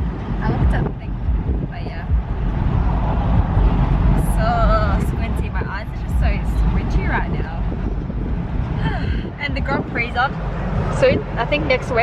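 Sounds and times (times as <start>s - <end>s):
road and engine rumble: 0.0s - 12.0s
wind buffeting microphone: 0.0s - 12.0s.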